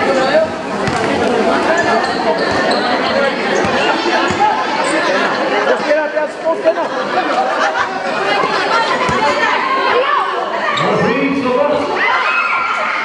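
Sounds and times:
crowd chattering: 0.0 - 13.0
basketball bouncing on court: 0.8 - 2.8, 3.6 - 4.6.

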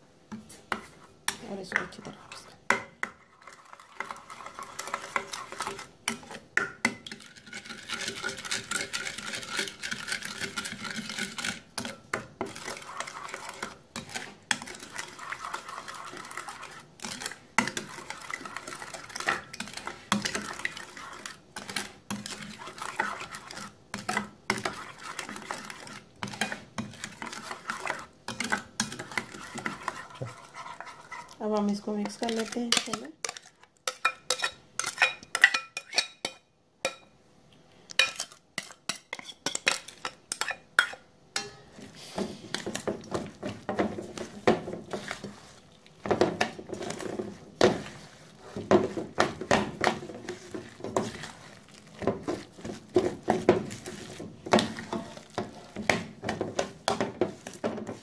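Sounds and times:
spoon stirring thick dressing: 0.2 - 37.1, 37.9 - 58.0
spoon scraping and tapping glass: 32.3 - 37.1, 37.9 - 41.7.

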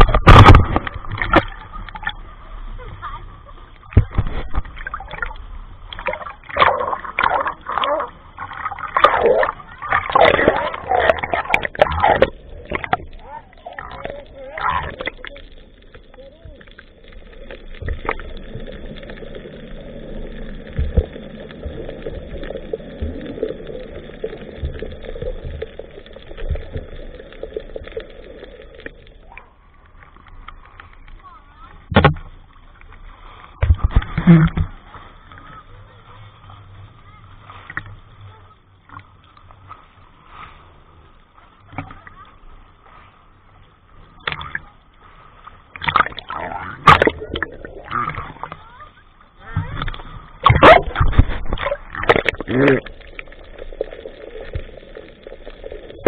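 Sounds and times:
splash against camera: 0.0 - 2.2, 3.9 - 15.4, 45.7 - 48.6, 49.4 - 54.7
sea water sloshing and splashing: 0.0 - 56.0.

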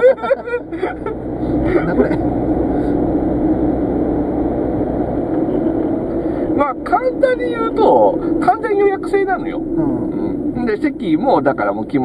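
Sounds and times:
car interior road rumble: 0.0 - 12.0.

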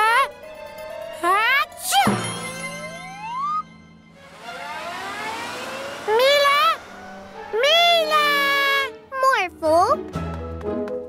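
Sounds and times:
rising glide sound effect: 2.2 - 9.1
rising whoosh: 2.8 - 8.9.

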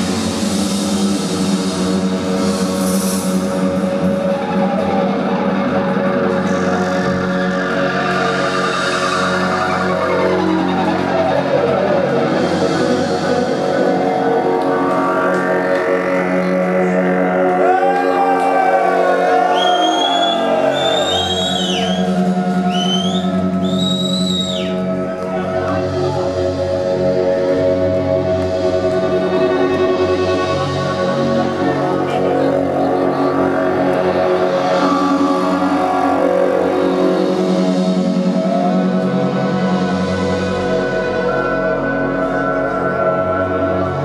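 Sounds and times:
psychedelic rock band droning: 0.0 - 44.0.

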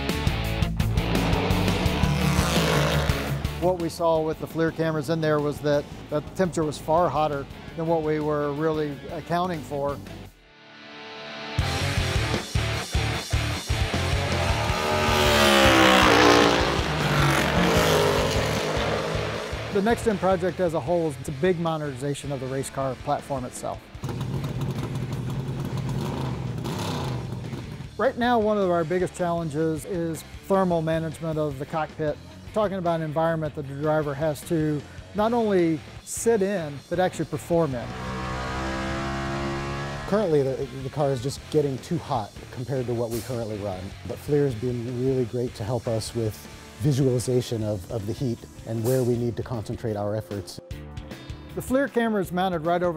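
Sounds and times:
background music: 0.0 - 52.9
race car engine passing by: 0.8 - 3.6, 13.9 - 20.7, 37.6 - 40.7.

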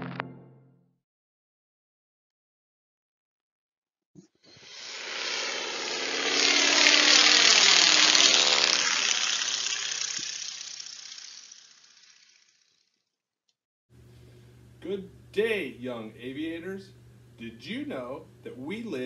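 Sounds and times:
propeller airplane flying past: 4.6 - 13.0.

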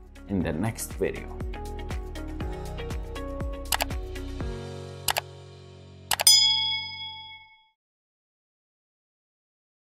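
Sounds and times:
mouse-click sound effects: 3.7 - 3.9
bright bell-like ding: 6.1 - 7.7.

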